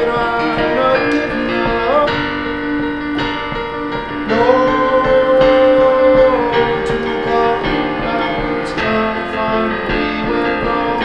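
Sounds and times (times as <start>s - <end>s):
man singing: 0.0s - 2.8s, 4.1s - 11.0s
digital piano playing: 0.0s - 11.0s.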